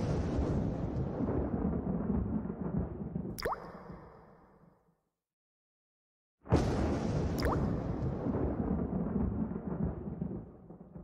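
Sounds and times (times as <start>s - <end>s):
water drop sound effect: 3.3s - 4.7s, 7.4s - 8.1s.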